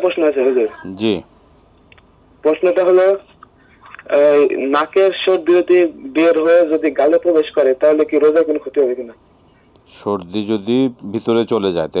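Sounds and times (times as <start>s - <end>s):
person talking over telephone line: 2.4s - 9.2s.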